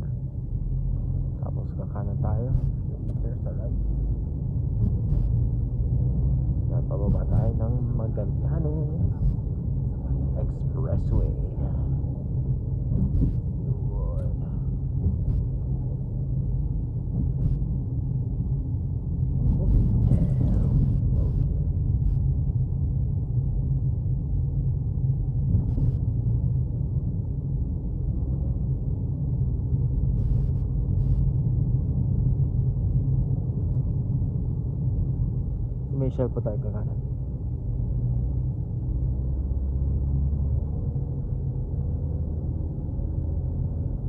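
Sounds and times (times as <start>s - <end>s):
engine and road noise in car: 0.0s - 44.0s.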